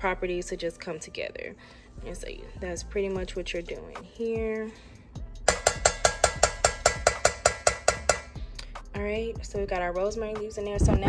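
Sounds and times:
metal spoon clinking against bowl: 0:05.5 - 0:08.4.

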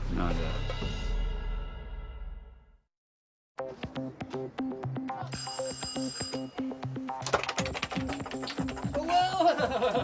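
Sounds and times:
electric doorbell ringing: 0:05.4 - 0:06.8
staccato background music: 0:06.6 - 0:10.0.

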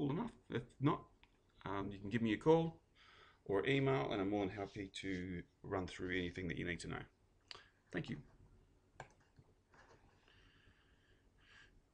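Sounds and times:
computer mouse click: 0:09.0 - 0:09.4.

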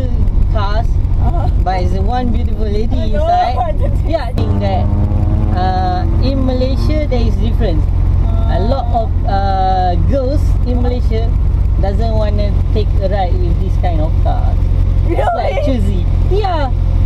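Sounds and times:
van engine and road rumble: 0:00.0 - 0:17.0
people talking and laughing: 0:01.2 - 0:01.9, 0:02.7 - 0:04.9, 0:15.0 - 0:16.0.

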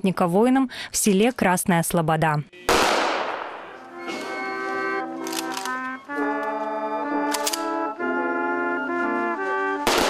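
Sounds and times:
brass band music: 0:02.5 - 0:10.0
rifle volley: 0:02.7 - 0:04.9.

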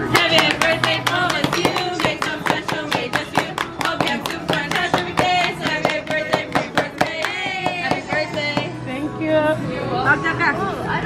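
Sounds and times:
group singing birthday song: 0:00.0 - 0:10.1.

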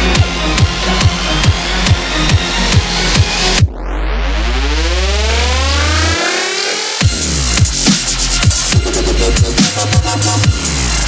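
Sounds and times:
rising synth sweep: 0:00.0 - 0:07.1.

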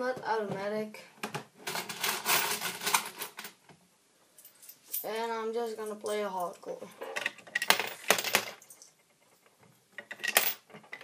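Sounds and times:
coins and plastic parts clattering: 0:01.6 - 0:03.6, 0:05.7 - 0:11.0.

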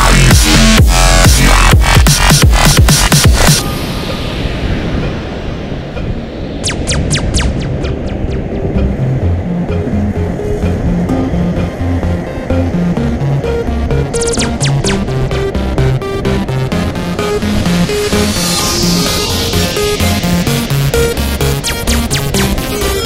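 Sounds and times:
electronic music with beat: 0:00.0 - 0:23.0
sharp high strikes: 0:01.8 - 0:09.0, 0:11.1 - 0:23.0.

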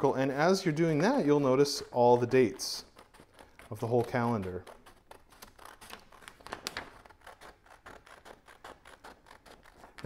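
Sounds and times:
scissors snipping paper: 0:01.1 - 0:10.0.

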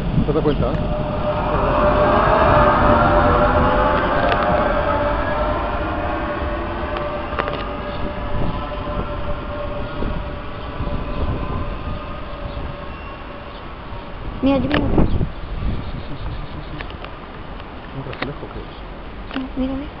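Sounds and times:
electric train traction whine: 0:00.0 - 0:20.0.

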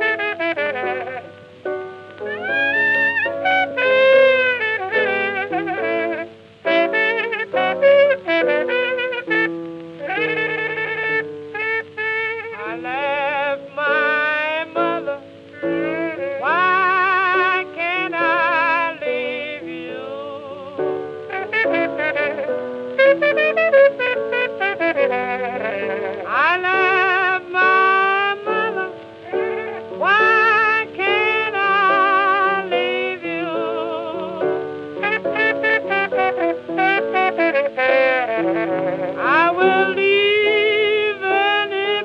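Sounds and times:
cornet playing blues: 0:00.0 - 0:42.0
piano chords: 0:00.0 - 0:42.0.

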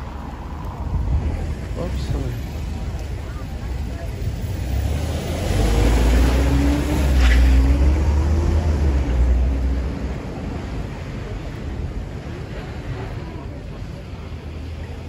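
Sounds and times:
street traffic rumble: 0:00.0 - 0:15.0
vehicle engine passing: 0:04.4 - 0:10.7
murmur of voices: 0:10.2 - 0:15.0.

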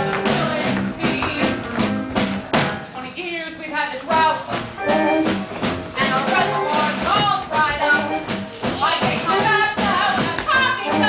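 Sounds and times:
band accompaniment: 0:00.0 - 0:11.0.

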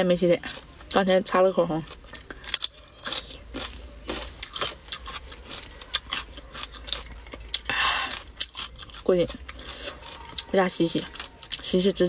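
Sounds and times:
crunching bites of raw mango: 0:01.8 - 0:11.7.

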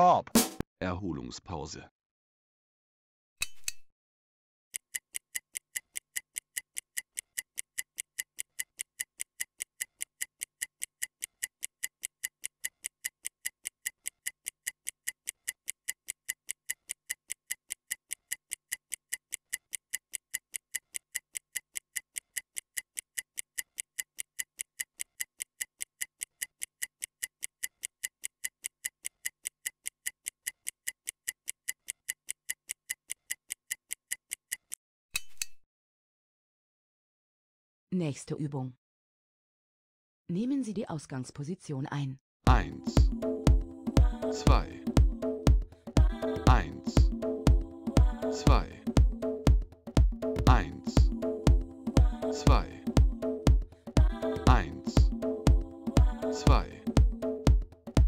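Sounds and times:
stopwatch ticking: 0:04.7 - 0:34.8, 0:42.5 - 0:58.0.

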